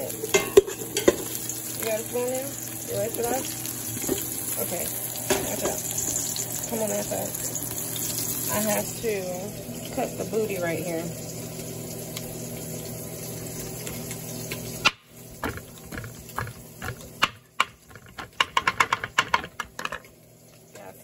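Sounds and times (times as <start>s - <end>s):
knife chopping on cutting board: 14.9s - 19.4s.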